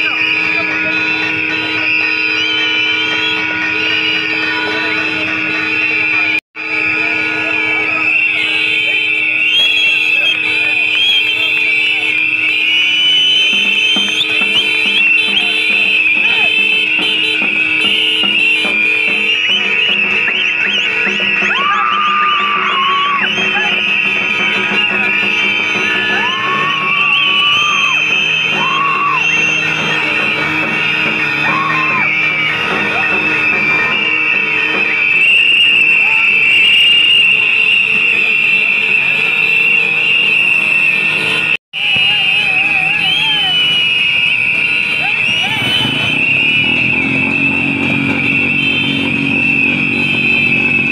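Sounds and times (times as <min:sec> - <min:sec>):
crowd blowing whistles: 0:00.0 - 0:50.9
sliding whistle notes: 0:00.0 - 0:50.9.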